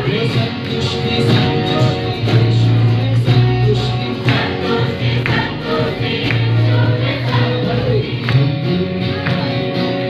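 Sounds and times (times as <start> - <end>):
sharp beat: 0.0 - 8.5
band with guitars playing: 0.0 - 10.0
group singing: 0.0 - 10.0.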